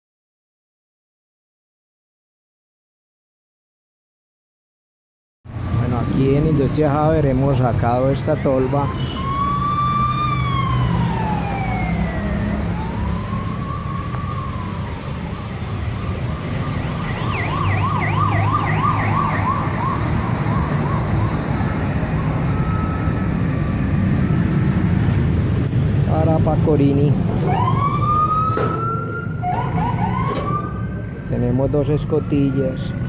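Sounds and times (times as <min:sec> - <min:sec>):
emergency vehicle siren: 0:05.5 - 0:33.0
low traffic hum: 0:05.5 - 0:33.0.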